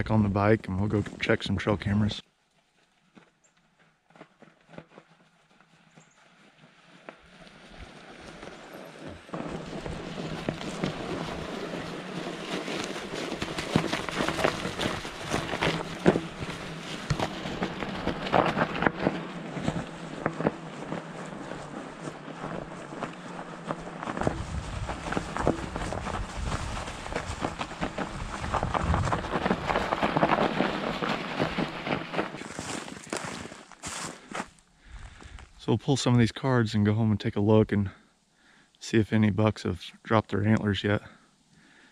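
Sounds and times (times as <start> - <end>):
bike tyres crunching over snow: 0.0 - 36.3
low rumble: 9.6 - 32.2.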